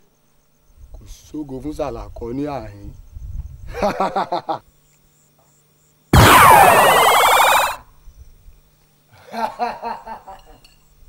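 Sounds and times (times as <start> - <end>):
burst of downward sweeping tones: 6.2 - 7.8.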